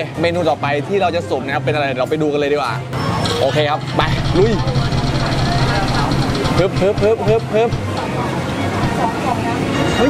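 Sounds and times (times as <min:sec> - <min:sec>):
street traffic hum: 0:02.4 - 0:10.0.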